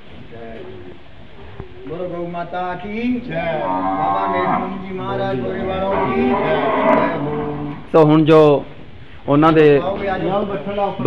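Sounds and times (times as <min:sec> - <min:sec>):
cow mooing: 0:03.5 - 0:07.9.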